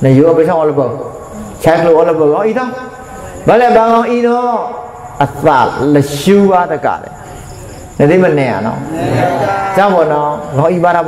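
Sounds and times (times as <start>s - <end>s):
man giving a sermon: 0.0s - 7.2s, 8.0s - 11.0s.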